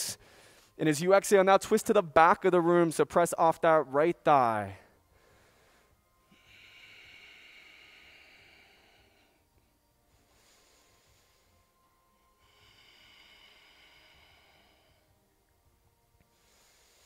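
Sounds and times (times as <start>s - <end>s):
slow breathing: 0.0s - 0.8s, 4.8s - 15.4s, 16.2s - 17.0s.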